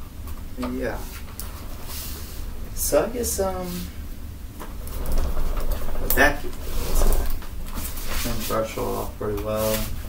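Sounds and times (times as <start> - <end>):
vacuum cleaner low rumble: 0.6 - 10.0.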